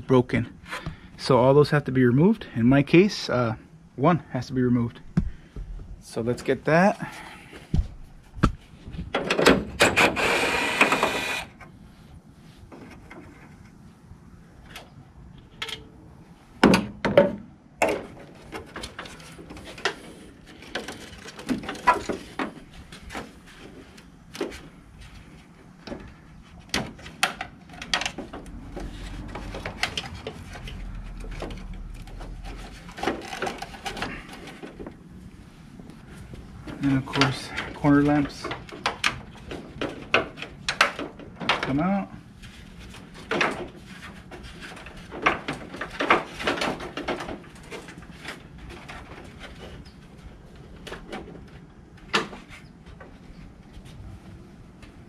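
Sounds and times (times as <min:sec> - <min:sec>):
cordless drill running: 0:09.9 - 0:11.5.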